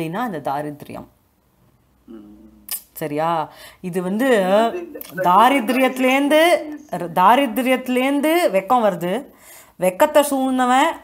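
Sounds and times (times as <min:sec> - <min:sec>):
woman humming: 0:02.1 - 0:02.7, 0:04.5 - 0:06.9.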